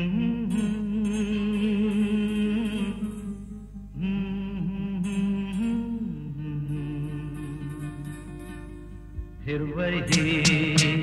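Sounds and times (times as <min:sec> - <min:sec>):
wordless melody line: 0:00.0 - 0:11.0
light ticking beat: 0:09.1 - 0:11.0.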